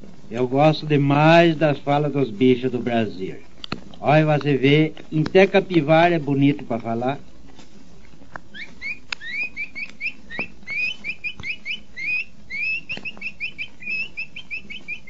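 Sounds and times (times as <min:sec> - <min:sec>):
capybara squeaky whistles: 0:08.5 - 0:15.0.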